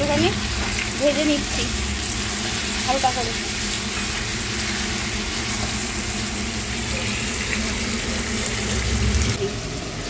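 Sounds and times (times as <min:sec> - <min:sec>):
chicken frying in oil: 0:00.0 - 0:10.0.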